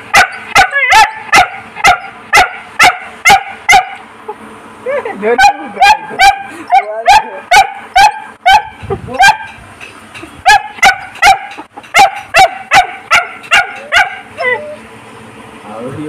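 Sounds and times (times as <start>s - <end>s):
puppy yapping: 0.1s - 4.4s, 5.4s - 9.6s, 10.4s - 14.8s.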